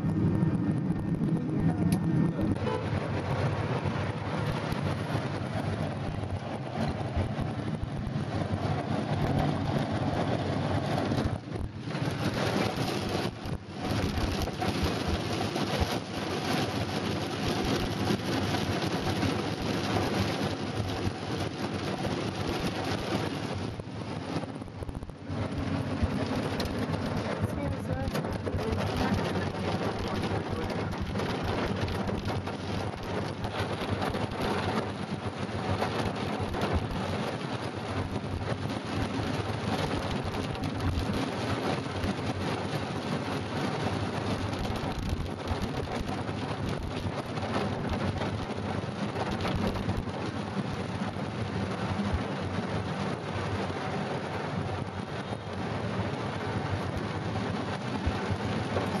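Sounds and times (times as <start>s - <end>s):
heavy rain on car roof: 0.0s - 59.0s.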